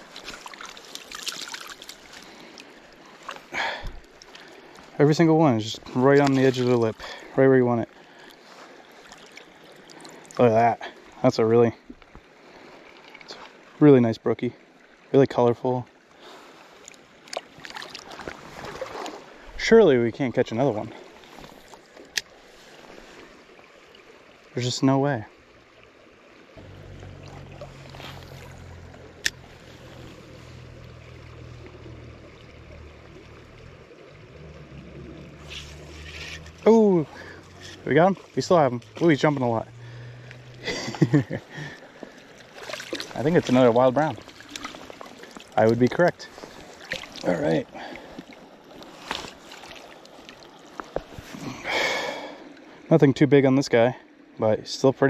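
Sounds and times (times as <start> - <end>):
water splashing: 0.0 - 11.4, 16.2 - 52.8
small creek flowing: 0.0 - 55.0
steady low hum: 26.6 - 45.1.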